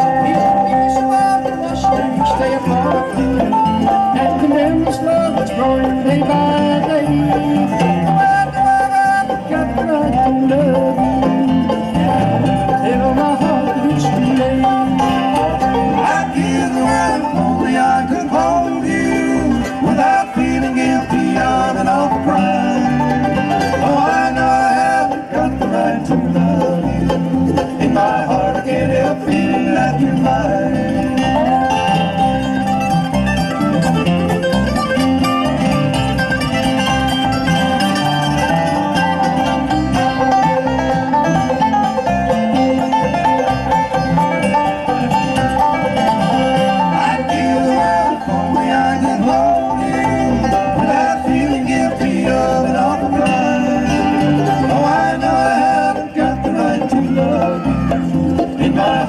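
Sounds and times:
acoustic guitar: 0:00.0 - 0:59.0
banjo: 0:00.0 - 0:59.0
electric bass: 0:00.0 - 0:59.0
mandolin: 0:00.0 - 0:59.0.

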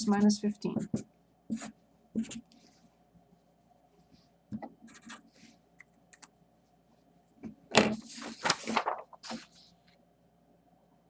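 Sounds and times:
marker scratching on paper: 0:00.1 - 0:02.6, 0:04.8 - 0:05.4
paper rustling clatter: 0:07.8 - 0:09.7.

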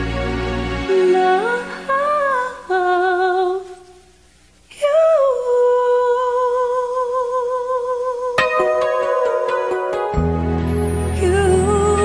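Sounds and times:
woman singing with vibrato: 0:00.9 - 0:04.1, 0:04.7 - 0:10.2, 0:11.0 - 0:12.0.

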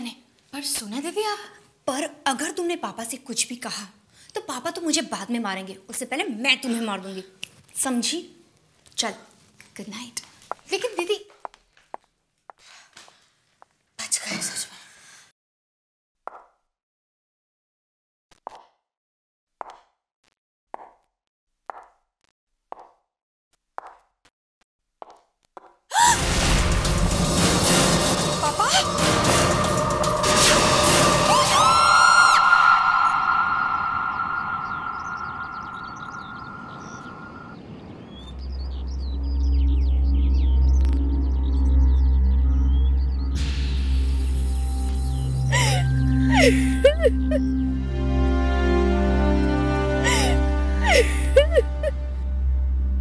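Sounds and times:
footsteps on tiled floor: 0:09.4 - 0:13.8, 0:25.0 - 0:25.8
woman screaming: 0:25.9 - 0:26.2, 0:28.4 - 0:29.2, 0:31.1 - 0:34.3, 0:45.6 - 0:47.4, 0:50.1 - 0:51.9
birds chirping: 0:31.8 - 0:48.0
deep low background music: 0:38.4 - 0:53.0.

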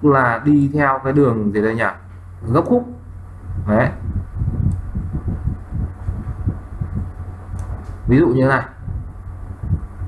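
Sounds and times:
steady low hum: 0:00.0 - 0:10.0
uneven low rumble: 0:03.0 - 0:10.0.

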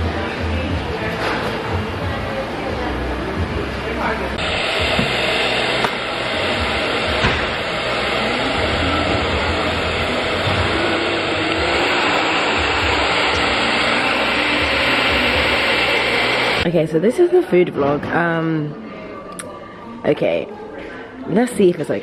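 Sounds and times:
hair dryer running: 0:04.4 - 0:16.7.

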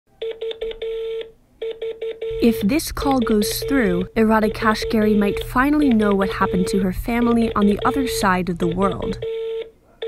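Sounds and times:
phone call-progress beeps: 0:00.2 - 0:09.7.

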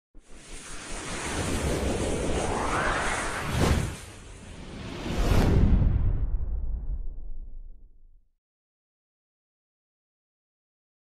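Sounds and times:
whoosh sound effect: 0:00.3 - 0:06.4.

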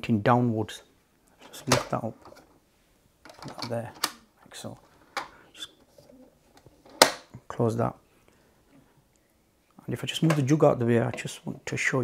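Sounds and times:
loud plastic lid snap: 0:06.9 - 0:07.3.

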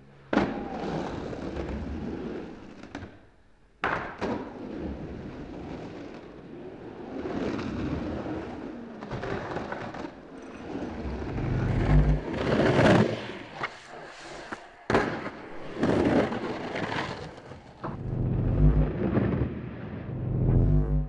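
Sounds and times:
skateboard wheels rolling on concrete: 0:00.1 - 0:18.1
skateboard crack: 0:03.8 - 0:18.0.

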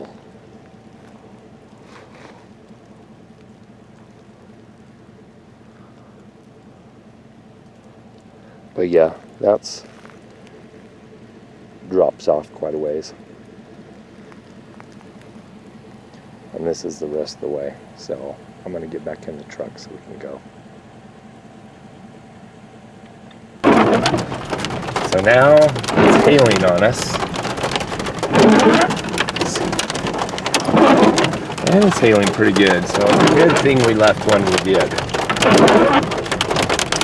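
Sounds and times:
light rain falling: 0:00.0 - 0:37.0
hail hitting truck: 0:23.6 - 0:37.0.

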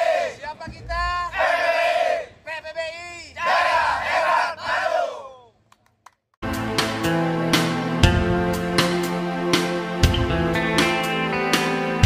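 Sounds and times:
man calling out: 0:00.3 - 0:01.4, 0:02.3 - 0:03.6.

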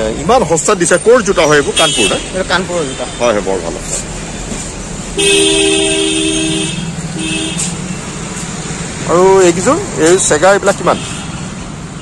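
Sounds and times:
vehicle horn honking: 0:01.8 - 0:03.4, 0:05.2 - 0:07.9.

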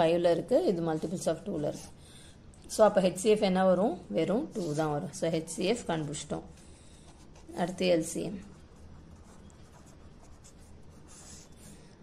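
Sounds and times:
pen scratching on paper: 0:08.5 - 0:11.8.

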